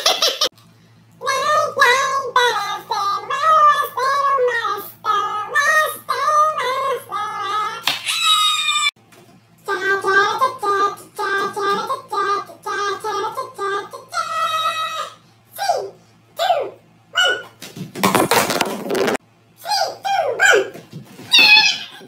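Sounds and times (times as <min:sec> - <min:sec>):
high-pitched voice singing: 0:01.2 - 0:08.8, 0:09.7 - 0:17.5.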